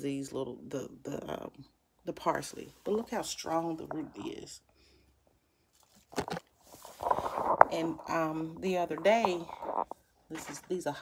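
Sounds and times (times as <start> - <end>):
handling rustle: 5.7 - 11.0
short crackles: 6.0 - 11.0.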